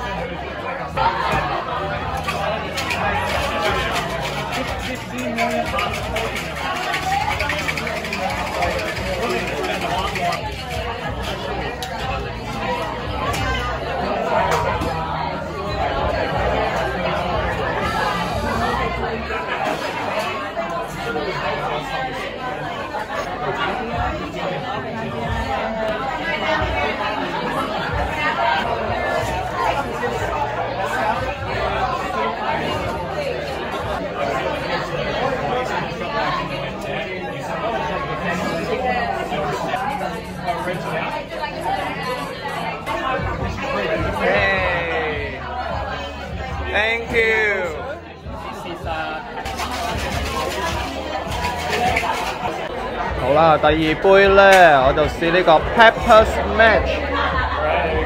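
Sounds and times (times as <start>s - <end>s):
background music: 0.0s - 20.2s, 37.9s - 58.0s
crowd chatter: 0.0s - 58.0s.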